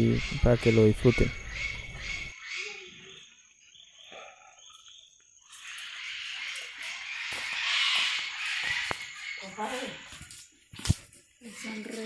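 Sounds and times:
faint animal calls: 0:00.0 - 0:10.4.

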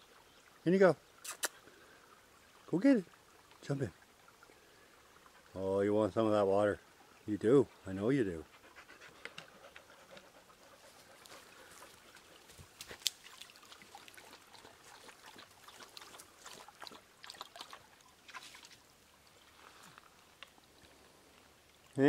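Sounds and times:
dog lapping water: 0:08.5 - 0:18.8.

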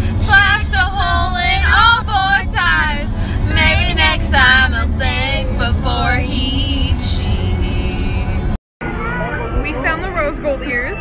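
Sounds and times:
low rumble of car cabin: 0:00.0 - 0:10.9
woman and girl singing: 0:00.1 - 0:08.4.

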